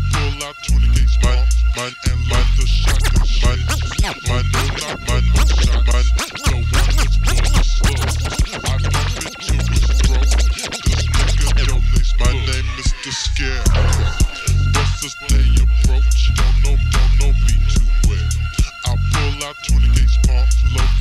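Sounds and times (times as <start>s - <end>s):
heavy bass line: 0.8s - 21.0s.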